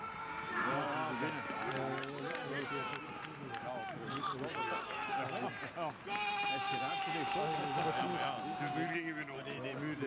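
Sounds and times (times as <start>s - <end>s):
young people shouting and cheering: 0.0s - 1.7s, 2.5s - 9.5s.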